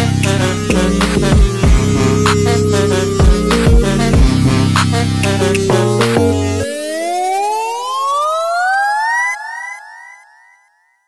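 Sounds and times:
rising electronic tone: 0.0 - 9.8
echoes of electronic tone: 0.0 - 10.7.

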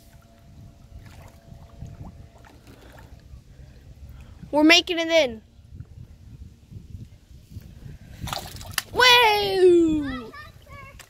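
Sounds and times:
fish splash with slap: 8.2 - 9.0.

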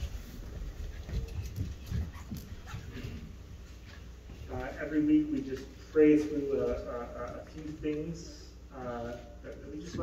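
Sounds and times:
thumps and shuffling: 0.0 - 8.2.

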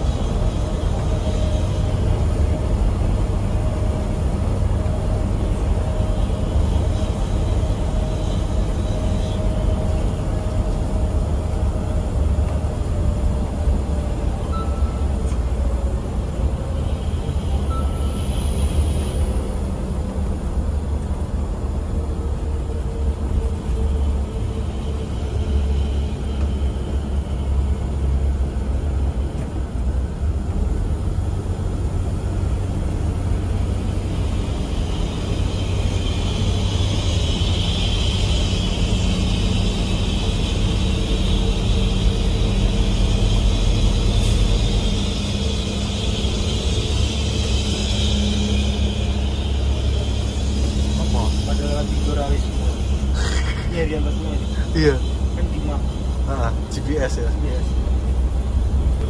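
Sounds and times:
coach engine and tyre rumble: 0.0 - 59.0
high hiss: 33.3 - 59.0.

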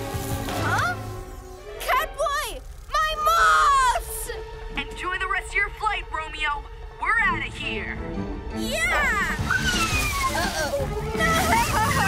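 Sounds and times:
background music: 0.0 - 12.0
cartoon watery splash: 9.3 - 12.0.

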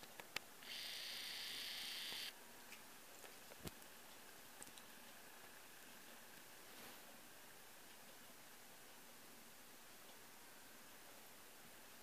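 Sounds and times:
camcorder zoom motor whirring: 0.6 - 2.3.

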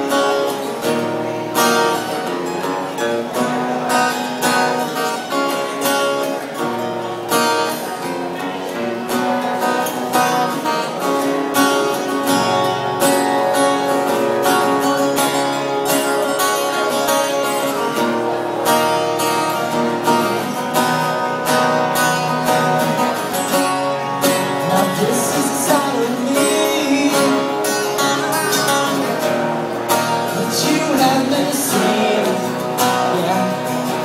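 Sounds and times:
acoustic guitars strumming: 0.0 - 34.0
person singing: 24.3 - 29.3, 30.0 - 34.0.

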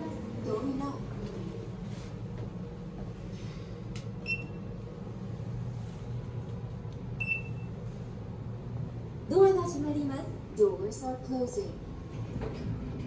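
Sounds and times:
steady low hum: 0.0 - 13.0
card reader beeping: 4.2 - 4.6, 7.2 - 7.7.

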